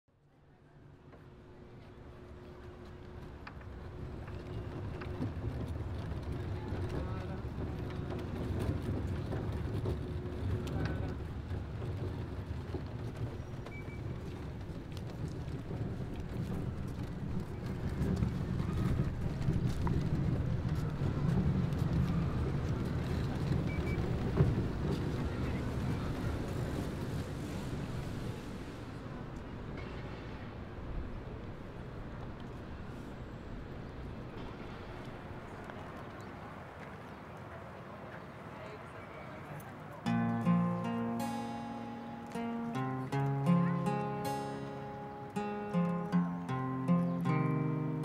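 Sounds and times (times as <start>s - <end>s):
traffic rumble: 0.5s - 48.0s.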